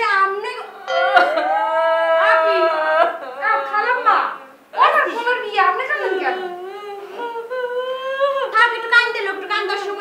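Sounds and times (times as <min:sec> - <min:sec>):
woman wailing a long note: 0:00.7 - 0:03.7.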